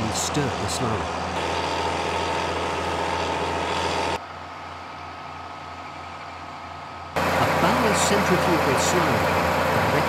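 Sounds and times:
pump engine drone: 0.0s - 10.0s
tractor engine running: 0.0s - 10.0s.

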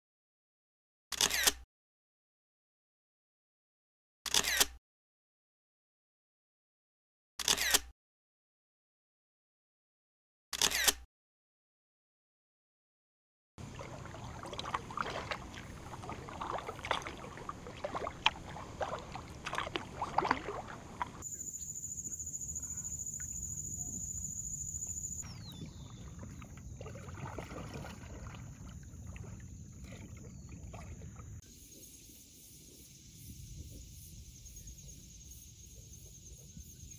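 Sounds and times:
camera shutter clack: 1.1s - 1.6s, 4.3s - 4.8s, 7.4s - 7.9s, 10.6s - 11.0s
kayak paddle splashing: 13.6s - 21.2s, 25.3s - 31.4s.

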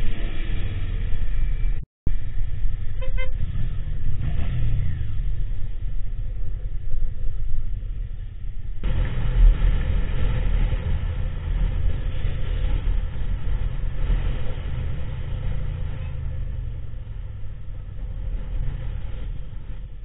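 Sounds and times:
motorcycle engine rumble: 0.0s - 20.0s
surrounding traffic: 0.0s - 20.0s
wind and road noise: 0.0s - 20.0s
vehicle horn toots: 3.0s - 3.5s.

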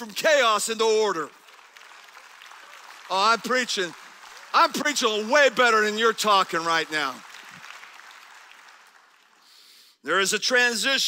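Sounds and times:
scattered applause: 0.0s - 10.0s.

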